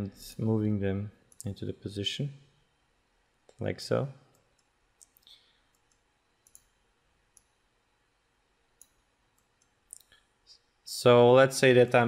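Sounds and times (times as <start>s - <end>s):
faint computer mouse clicks: 4.3s - 6.7s.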